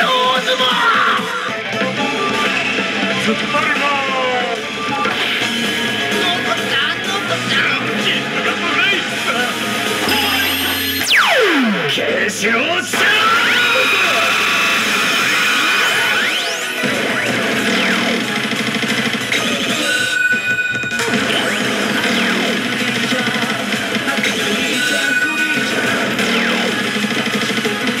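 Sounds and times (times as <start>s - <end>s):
slot machine music and effects: 0.0s - 28.0s.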